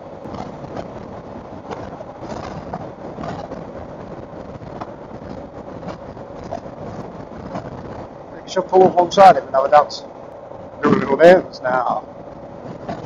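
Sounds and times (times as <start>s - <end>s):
wind and road noise: 0.0s - 13.0s.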